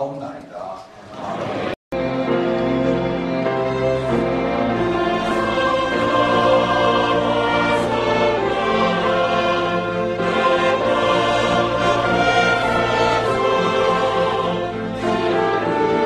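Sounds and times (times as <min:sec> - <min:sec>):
string ensemble: 0:01.1 - 0:16.0
church choir singing: 0:01.2 - 0:16.0.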